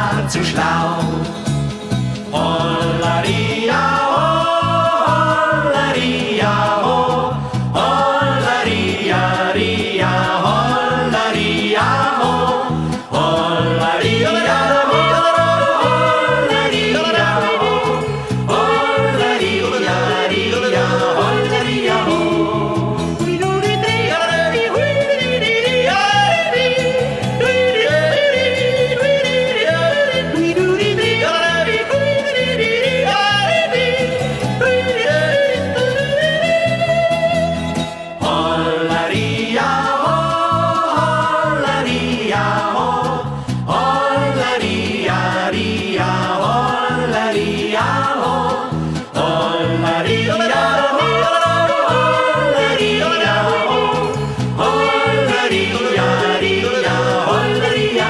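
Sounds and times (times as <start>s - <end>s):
man yodeling: 0.0s - 1.3s, 2.3s - 43.2s, 49.2s - 58.0s
folk band accompaniment: 0.0s - 58.0s.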